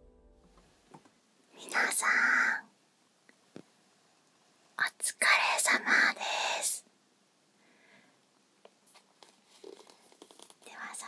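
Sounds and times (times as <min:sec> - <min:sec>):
woman whispering: 0:01.6 - 0:02.7, 0:04.8 - 0:06.9, 0:10.6 - 0:11.0.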